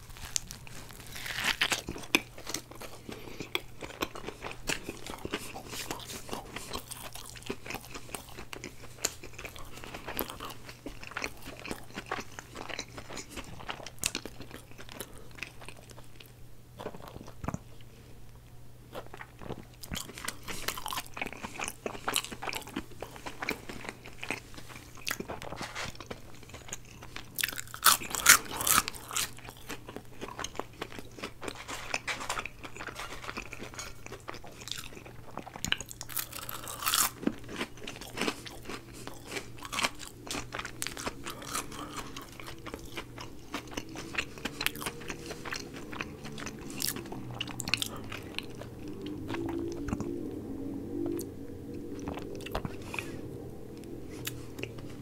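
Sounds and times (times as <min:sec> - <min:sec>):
chewing and crunching fries: 0:00.0 - 0:55.0.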